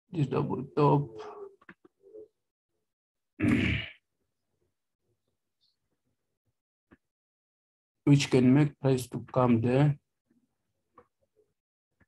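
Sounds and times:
man talking: 0.1s - 1.5s, 8.1s - 10.0s.

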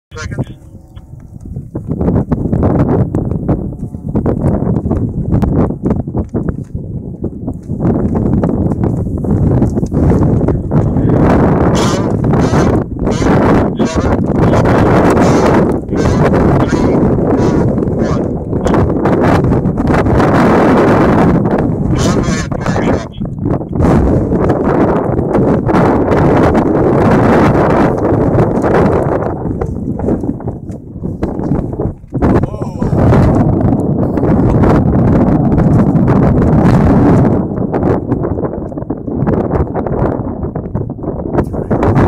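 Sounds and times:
wind gusting across microphone: 0.1s - 42.0s.

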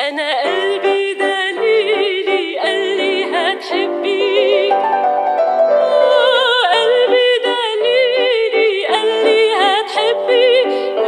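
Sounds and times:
woman singing with vibrato: 0.0s - 5.0s, 5.8s - 11.0s
grand piano: 0.2s - 11.0s.

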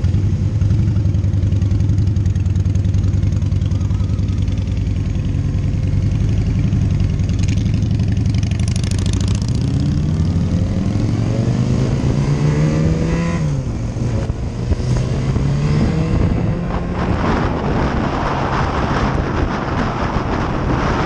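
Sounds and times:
motorcycle engine idling and revving: 0.0s - 21.0s.

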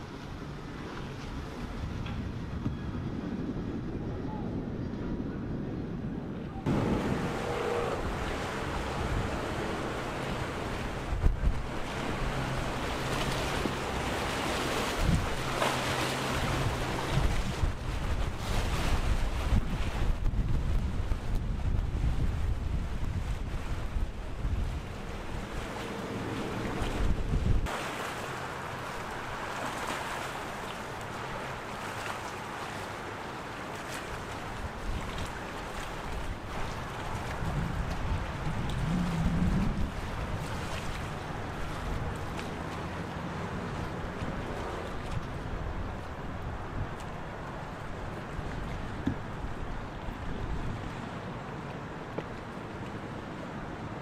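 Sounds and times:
outboard engines humming: 0.0s - 20.4s, 21.0s - 54.0s
wind on microphone: 0.0s - 27.8s, 34.2s - 42.9s, 43.5s - 51.2s
water wash: 6.6s - 54.0s.

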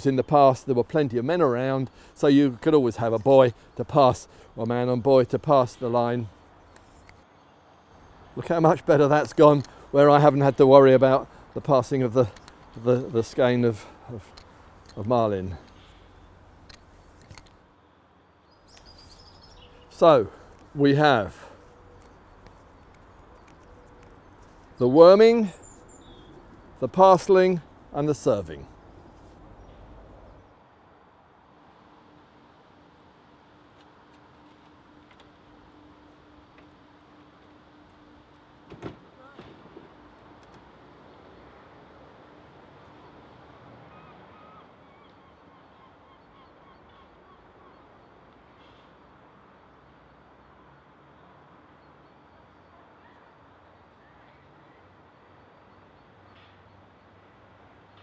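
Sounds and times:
small bird chirps: 18.5s - 19.9s, 25.5s - 26.4s.

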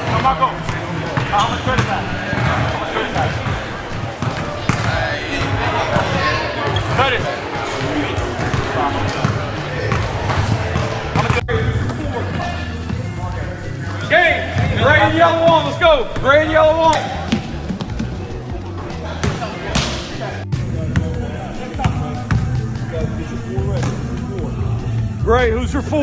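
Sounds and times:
basketballs bouncing on gym floor: 0.0s - 7.0s, 7.7s - 12.4s
chatter of people: 0.0s - 26.0s.

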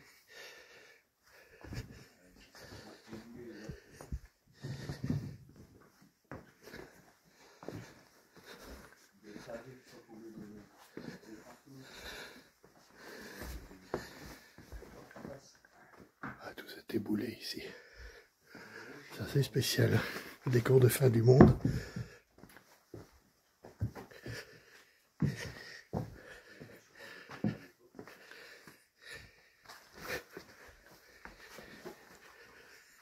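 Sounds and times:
person breathing hard: 0.0s - 15.3s, 17.6s - 20.5s, 21.3s - 33.0s
footsteps on stone rubble: 21.2s - 22.5s.

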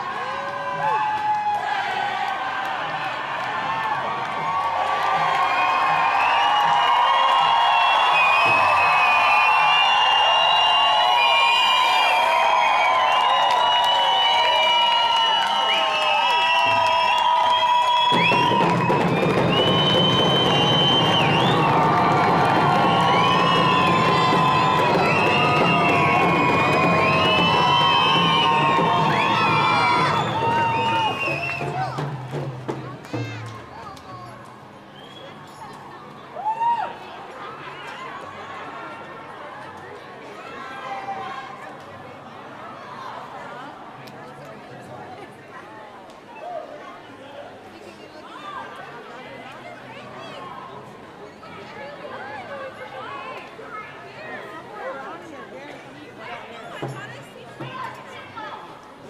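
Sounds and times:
hand drums: 18.1s - 33.6s.

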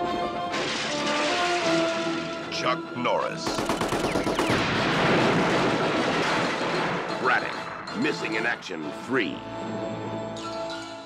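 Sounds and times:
explosion blast: 4.4s - 7.3s.

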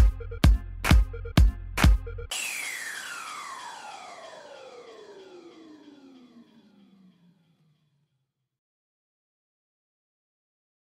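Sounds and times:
falling synth sweep: 2.3s - 7.9s.

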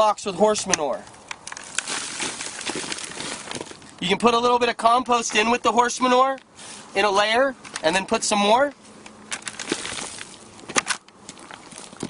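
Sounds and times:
manure pouring into cardboard box: 1.6s - 3.8s, 9.6s - 10.3s.

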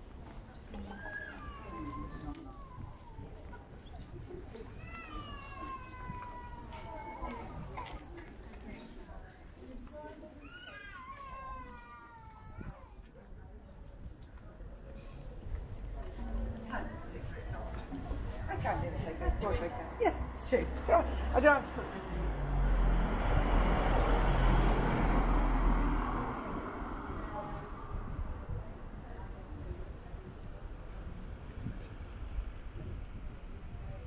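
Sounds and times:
car driving past: 20.2s - 28.5s.

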